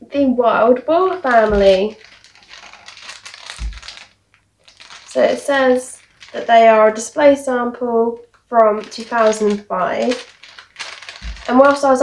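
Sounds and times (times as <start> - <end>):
plastic bag crinkling: 0.8 - 12.0.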